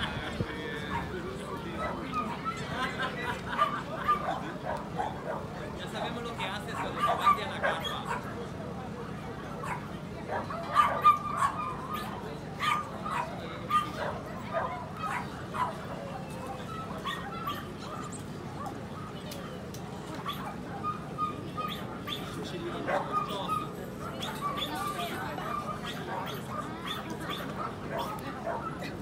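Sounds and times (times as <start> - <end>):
people talking: 0.0 - 29.0
dog yapping: 6.8 - 8.3, 9.6 - 15.8, 16.7 - 18.2, 20.2 - 28.8.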